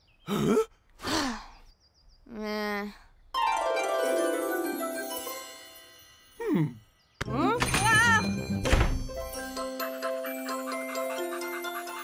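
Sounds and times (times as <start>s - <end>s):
cartoon thunk: 7.2s - 9.2s.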